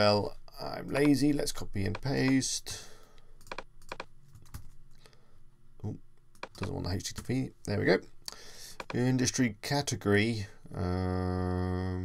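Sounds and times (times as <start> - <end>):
keyboard and mouse clicks: 0.9 - 1.2, 1.8 - 2.4, 3.4 - 4.8, 6.3 - 7.4, 8.8 - 9.0.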